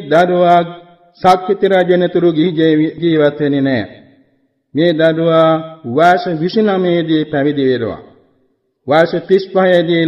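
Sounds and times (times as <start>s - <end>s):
man preaching in chant-like voice: 0.0s - 10.0s.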